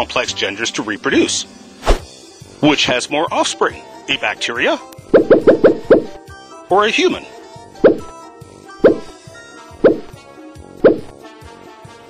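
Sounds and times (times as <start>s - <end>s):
background music: 0.0s - 12.0s
popping sound effects: 5.0s - 6.2s, 7.8s - 8.1s, 8.8s - 9.1s, 9.8s - 10.1s, 10.8s - 11.1s.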